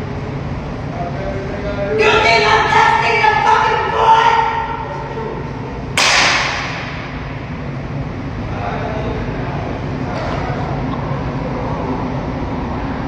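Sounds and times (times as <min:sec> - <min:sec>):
steady low rumble: 0:00.0 - 0:13.0.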